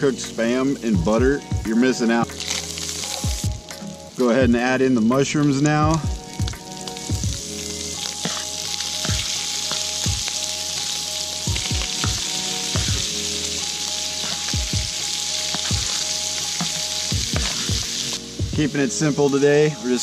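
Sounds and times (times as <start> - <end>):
food sizzling in a frying pan: 0.0 - 20.0.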